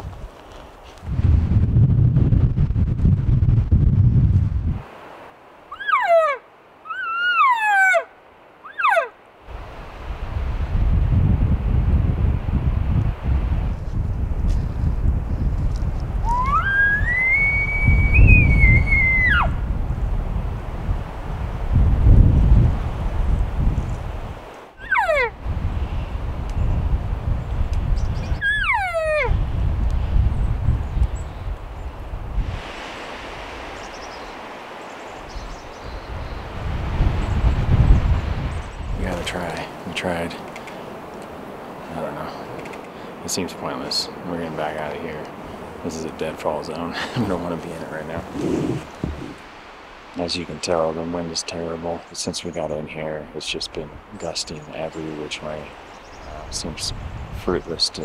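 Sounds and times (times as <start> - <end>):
wind rumbling on microphone: 0.0 - 6.3, 9.5 - 52.1, 53.6 - 58.0
cow elk mews: 5.7 - 9.1, 24.8 - 25.4, 28.4 - 29.4, 48.2 - 49.4.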